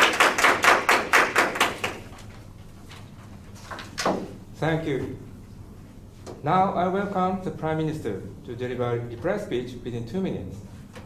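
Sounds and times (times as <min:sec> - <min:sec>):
people clapping: 0:00.0 - 0:02.2.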